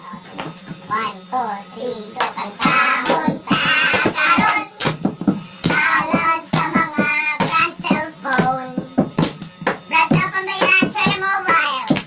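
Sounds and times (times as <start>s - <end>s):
young voices chanting: 1.8s - 5.0s
hand claps: 2.2s - 12.0s.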